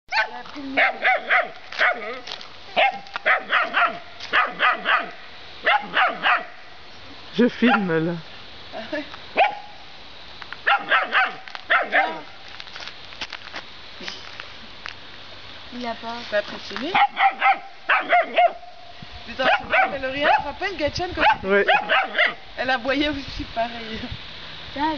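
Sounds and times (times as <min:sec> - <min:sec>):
puppy barking: 0:00.1 - 0:02.2, 0:02.8 - 0:06.6, 0:07.6 - 0:07.9, 0:09.4 - 0:09.7, 0:10.6 - 0:12.3, 0:16.9 - 0:18.7, 0:19.4 - 0:20.6, 0:21.2 - 0:22.4.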